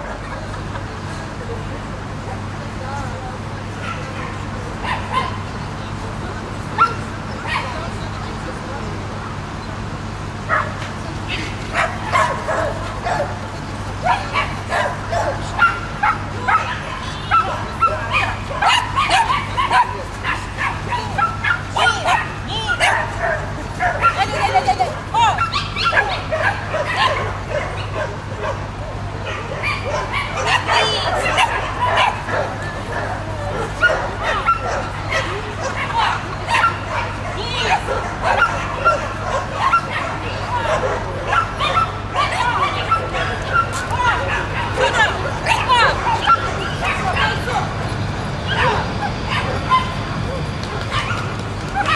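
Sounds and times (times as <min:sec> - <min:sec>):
dog yapping: 0:14.0 - 0:28.6, 0:29.3 - 0:47.8, 0:48.4 - 0:51.9.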